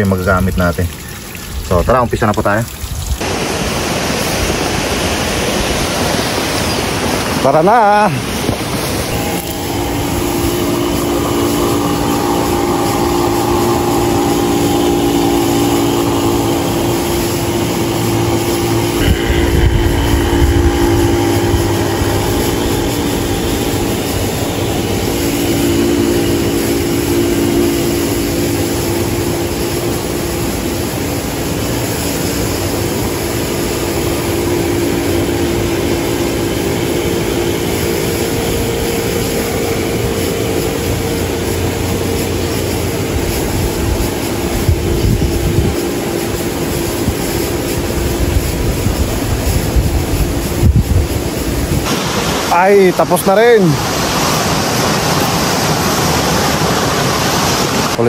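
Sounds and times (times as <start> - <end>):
motor humming steadily: 0.0 - 58.0.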